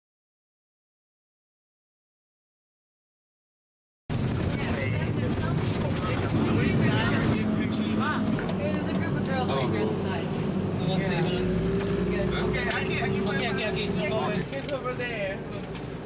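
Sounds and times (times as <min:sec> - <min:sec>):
bus engine droning: 0:04.1 - 0:16.0
passengers chattering: 0:04.1 - 0:16.0.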